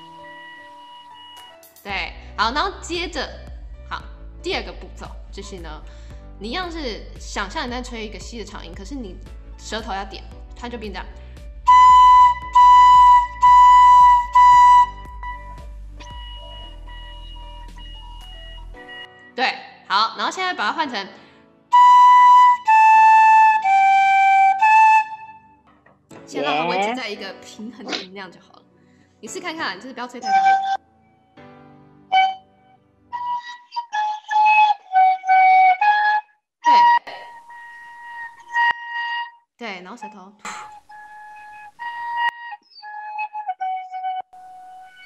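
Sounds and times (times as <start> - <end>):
flute notes: 0.0 - 1.7, 11.6 - 19.2, 21.7 - 25.6, 30.2 - 30.8, 32.1 - 45.0
wooden fife notes: 11.7 - 18.7, 30.2 - 30.8, 36.7 - 39.4.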